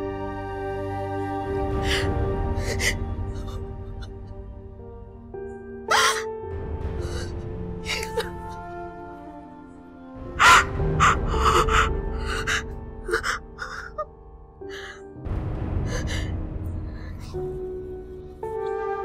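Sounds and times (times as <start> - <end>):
slow background music: 0.0 - 19.0
woman sobbing and gasping: 5.9 - 6.3, 6.9 - 8.8, 10.4 - 14.1.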